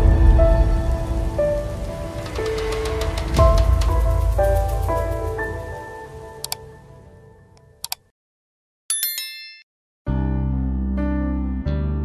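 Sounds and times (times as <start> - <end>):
deep rumble: 0.0 - 5.7.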